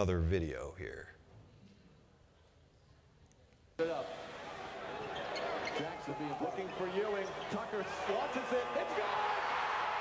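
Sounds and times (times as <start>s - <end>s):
arena crowd noise: 3.8s - 10.0s.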